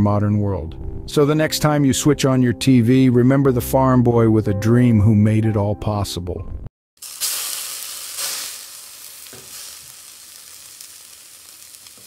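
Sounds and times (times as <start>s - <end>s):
burger patties sizzling on a grill: 7.0s - 12.0s.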